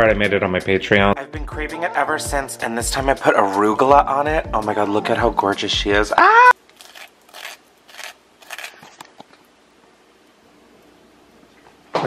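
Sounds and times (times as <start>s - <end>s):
toasted sandwich crunching: 6.6s - 9.4s.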